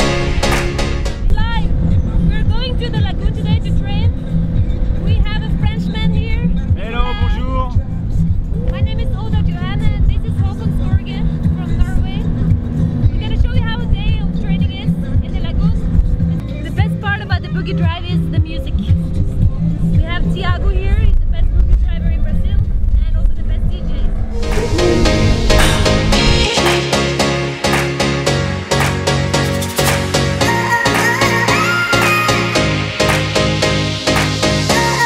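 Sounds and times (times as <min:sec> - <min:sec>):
music: 0:00.0 - 0:35.0
dune buggy engine rumbling: 0:01.1 - 0:24.4
people talking: 0:02.3 - 0:04.1, 0:05.1 - 0:07.8, 0:08.7 - 0:12.2, 0:13.2 - 0:15.8, 0:16.6 - 0:19.0, 0:20.0 - 0:24.1.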